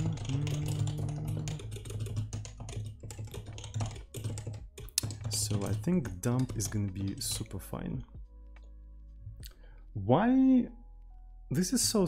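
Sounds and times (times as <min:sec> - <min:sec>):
typing on computer keyboard: 0:00.0 - 0:07.6.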